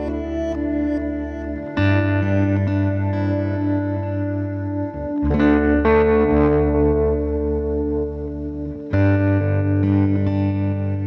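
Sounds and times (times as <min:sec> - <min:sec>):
guitar chords with heavy effects: 0:00.0 - 0:11.0.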